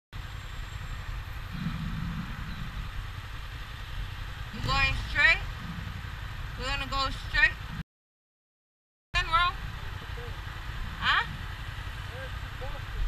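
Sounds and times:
motorcycles idling: 0.2 - 7.8, 9.2 - 13.0.

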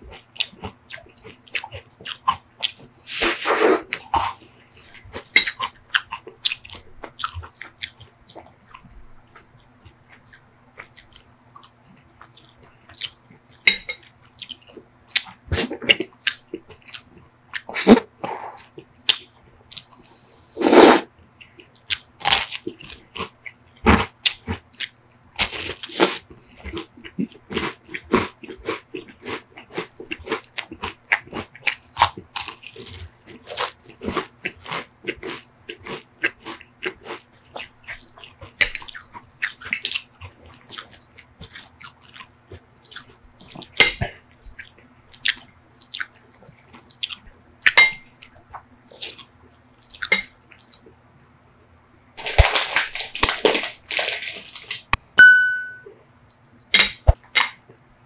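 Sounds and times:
crunchy chewing of sugar cone: 0.0 - 51.0.

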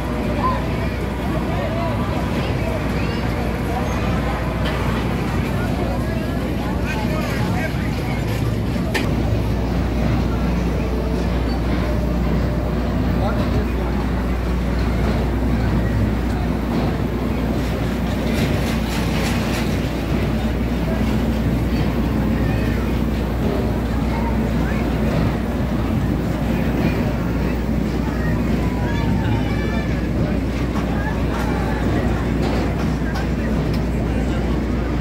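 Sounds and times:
crowd chatter: 0.0 - 35.0
low mechanical hum: 0.0 - 35.0.

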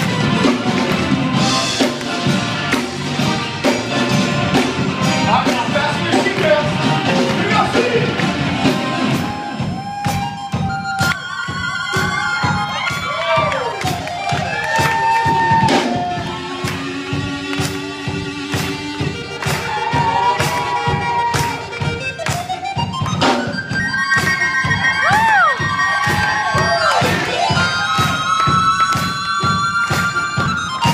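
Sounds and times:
steady drum beat: 0.0 - 30.9.

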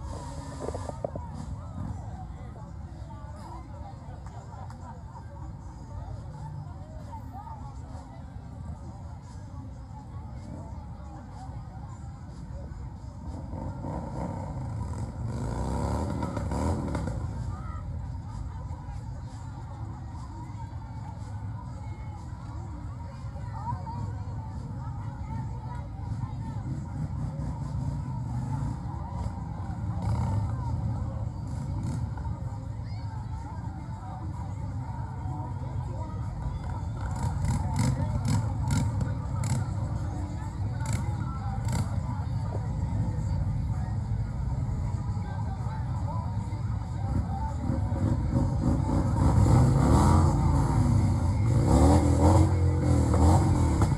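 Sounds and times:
crowd voices: 0.0 - 53.9
motorcycle engines running: 9.0 - 53.9
vehicle engine revving: 13.3 - 17.4, 37.0 - 39.8, 47.6 - 53.9.

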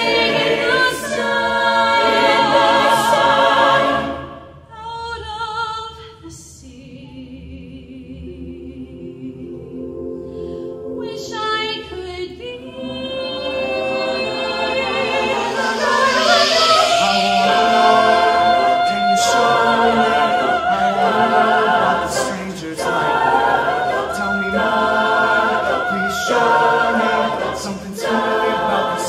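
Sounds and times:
a cappella group singing chords: 0.0 - 29.0
high voice with vibrato: 13.4 - 19.7.

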